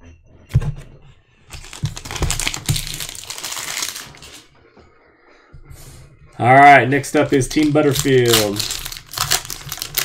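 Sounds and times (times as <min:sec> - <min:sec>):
foil wrappers crinkling: 0:01.5 - 0:04.5, 0:07.2 - 0:10.0.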